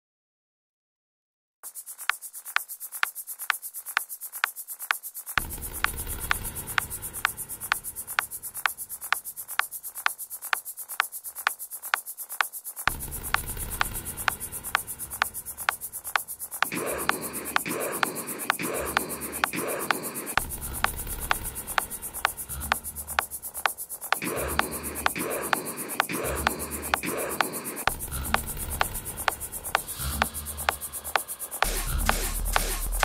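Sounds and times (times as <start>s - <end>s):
fast high hissing tick: 1.6s - 33.0s
pulsing mid-range synth layer: 12.8s - 33.0s
low bass drone: 27.9s - 33.0s.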